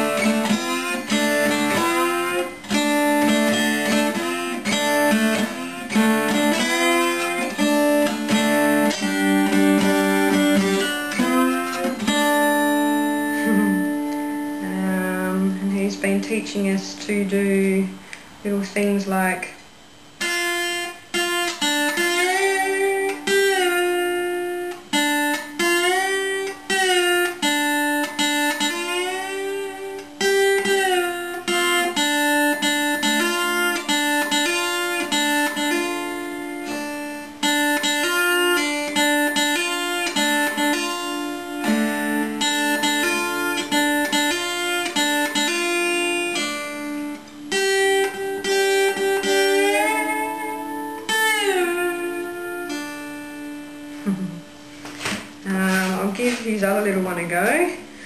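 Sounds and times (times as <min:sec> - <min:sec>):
slide guitar playing: 0:00.0 - 0:18.0, 0:20.0 - 0:58.0.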